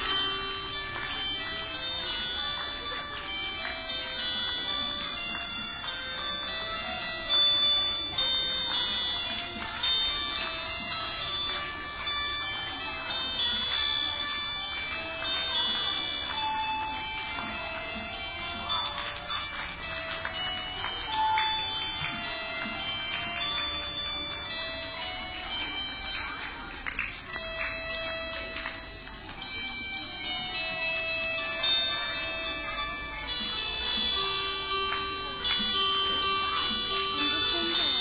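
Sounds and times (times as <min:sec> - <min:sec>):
electronic keyboard melody: 0:00.0 - 0:38.0.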